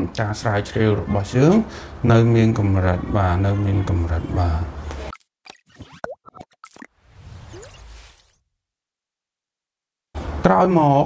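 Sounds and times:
whoosh with rising tone: 0:07.0 - 0:08.4.

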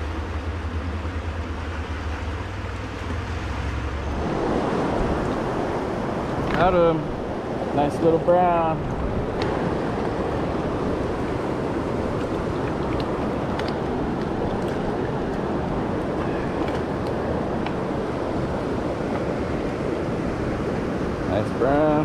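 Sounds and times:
rushing river water: 0:00.0 - 0:22.0.

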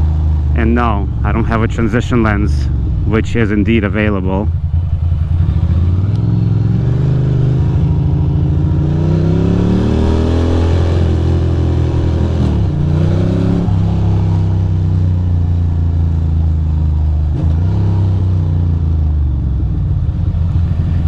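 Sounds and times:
motorcycle engine accelerating: 0:00.0 - 0:21.0.

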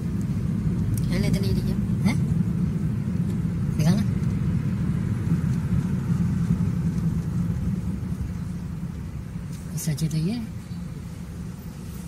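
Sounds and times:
engine and road noise in car cabin: 0:00.0 - 0:12.0.

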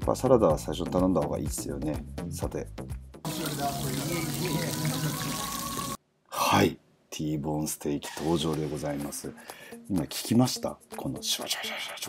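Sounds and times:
steak sizzling on hot plate: 0:03.3 - 0:06.0.

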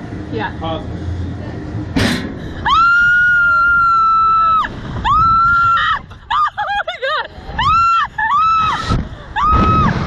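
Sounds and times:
woman screaming: 0:02.6 - 0:06.7, 0:07.6 - 0:10.0.

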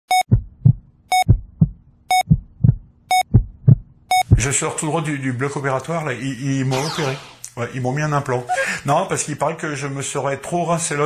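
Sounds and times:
heartbeat thump: 0:00.1 - 0:04.5
electronic monitor beep: 0:04.1 - 0:04.3.

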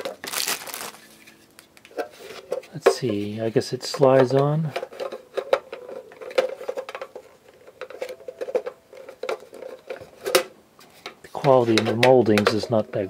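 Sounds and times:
plastic parts clicking: 0:03.8 - 0:12.8.

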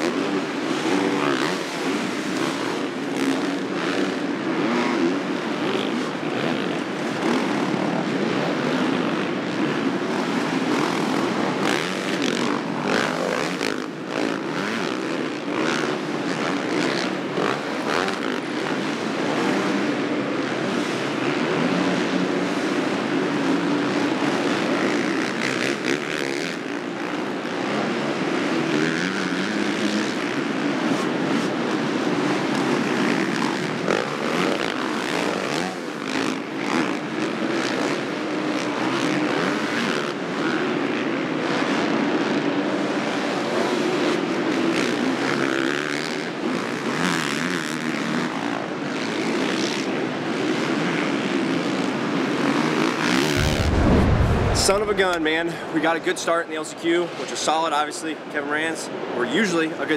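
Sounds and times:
motorcycle engines racing: 0:00.0 - 0:57.5.

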